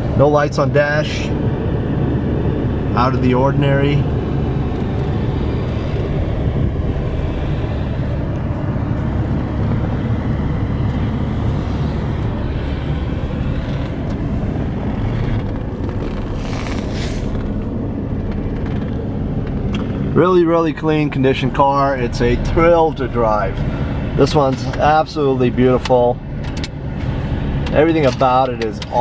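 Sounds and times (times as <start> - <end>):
car engine running steadily: 0.0 - 29.0.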